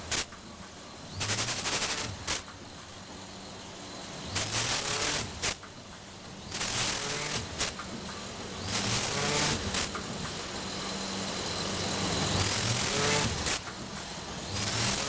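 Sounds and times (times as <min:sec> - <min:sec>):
hiss: 0:00.0 - 0:15.0
machine clacks: 0:00.0 - 0:15.0
rising motor whines: 0:06.4 - 0:13.7.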